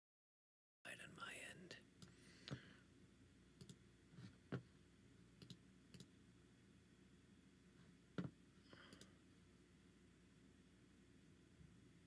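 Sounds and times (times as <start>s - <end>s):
faint whisper: 0.9s - 1.9s
soft clicks: 3.6s - 3.8s, 5.4s - 6.1s.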